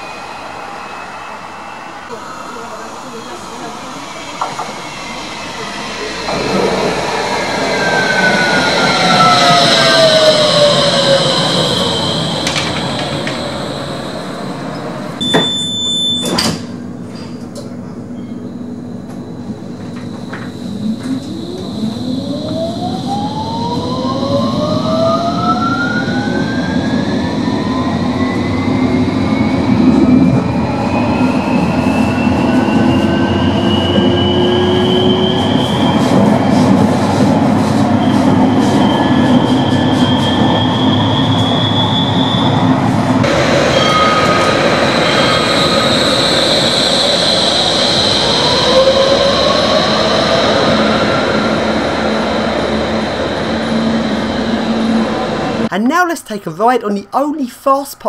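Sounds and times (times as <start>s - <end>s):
tram motors whining: 0.0s - 55.7s.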